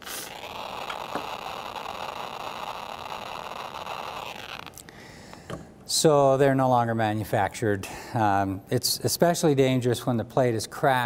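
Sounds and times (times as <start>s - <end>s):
geiger counter crackling: 0.0s - 4.8s.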